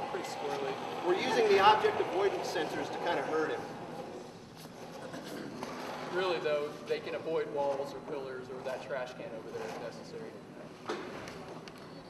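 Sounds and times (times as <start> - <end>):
large hall background noise: 0.0 - 12.0.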